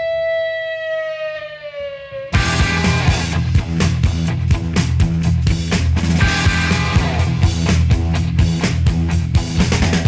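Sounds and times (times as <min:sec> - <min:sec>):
held organ chord: 0:01.0 - 0:04.3.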